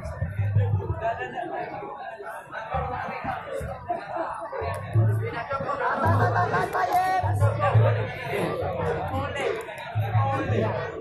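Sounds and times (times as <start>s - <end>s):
repeated low beat: 0.0s - 1.3s, 2.7s - 11.0s.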